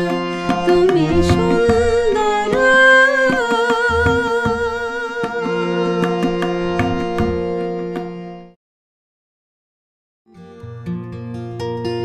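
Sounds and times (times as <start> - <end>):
woman singing with vibrato: 0.0 - 6.1
tabla strokes: 0.0 - 8.2
sustained accompanying chord: 0.0 - 8.5.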